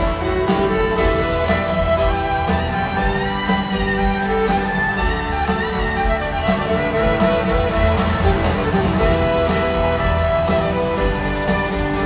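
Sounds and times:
fiddle lead lines: 0.0 - 12.0
live country band playing: 0.0 - 12.0.

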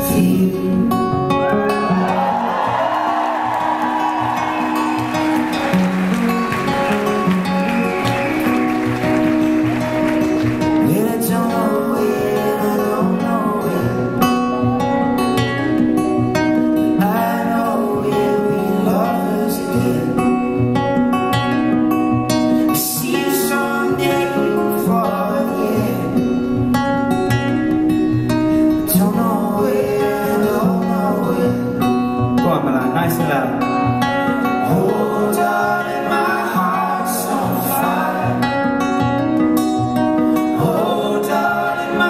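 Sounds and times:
acoustic guitar strumming: 0.0 - 42.0
audience singing along: 1.8 - 15.2, 34.5 - 42.0
people singing: 2.0 - 15.2, 16.9 - 20.8, 22.8 - 26.8, 28.8 - 31.9, 34.3 - 42.0.

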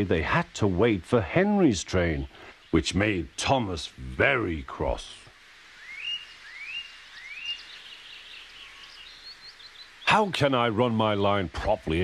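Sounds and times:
birds chirping: 0.0 - 12.0
faint outdoor background: 0.0 - 12.0.

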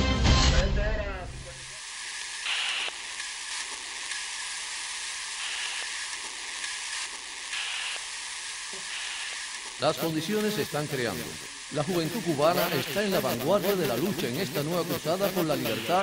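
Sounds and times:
radio static hiss: 0.9 - 16.0.

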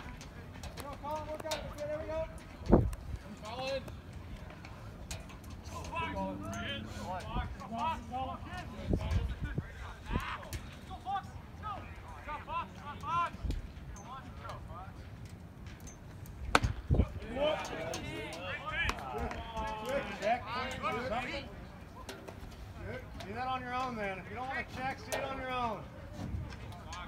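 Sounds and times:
spectators and players talking: 0.0 - 15.4, 16.4 - 27.0
baseball bat crack: 16.5 - 17.1
voices calling out: 16.6 - 27.0.

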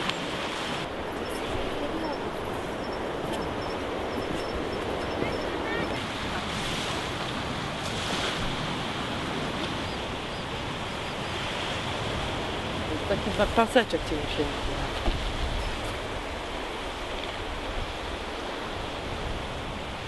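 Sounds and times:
sea surf breaking on rocks: 0.0 - 20.0
wind on microphone: 0.0 - 20.0.

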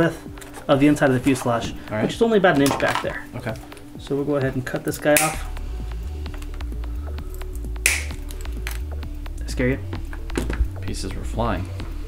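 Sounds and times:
background music with steady beat: 0.0 - 12.0
wooden stick snapping: 5.2 - 5.4, 7.5 - 8.3.

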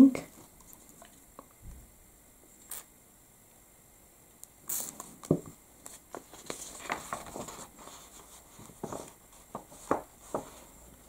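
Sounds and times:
paper rustling: 5.8 - 10.8.

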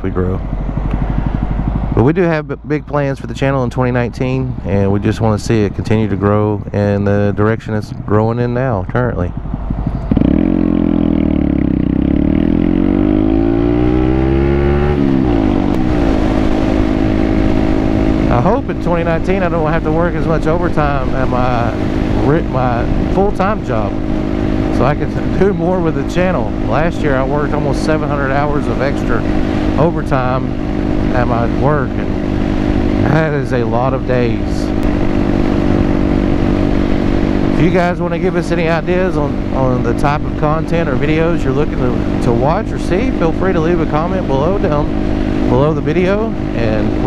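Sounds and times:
motorcycle engine accelerating: 0.0 - 47.0.

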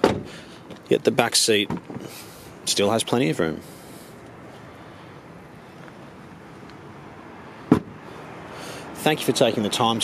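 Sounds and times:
car door shutting: 0.0 - 0.4, 7.7 - 8.0
outdoor background noise: 0.0 - 10.0.

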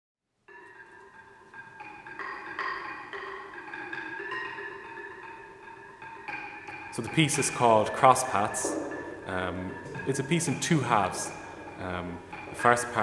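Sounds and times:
mallet percussion notes: 0.5 - 13.0.

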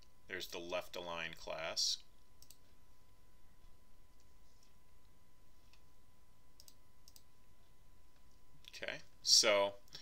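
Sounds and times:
faint steady hum: 0.0 - 10.0
computer mouse clicks: 2.4 - 2.6, 6.6 - 7.3.

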